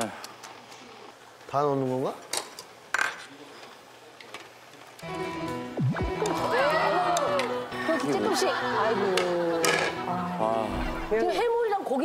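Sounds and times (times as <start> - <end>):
background music: 5.0 - 11.4
swooping pitch sound effect: 5.6 - 7.0
plates and utensils clinking: 9.1 - 10.1.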